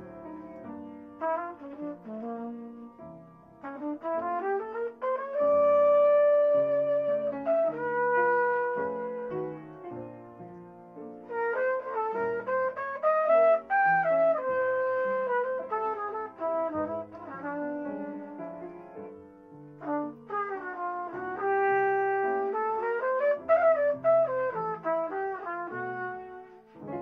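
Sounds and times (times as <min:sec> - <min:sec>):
trumpet playing jazz melody: 0:00.0 - 0:10.2, 0:11.1 - 0:27.0
piano chords: 0:00.0 - 0:27.0.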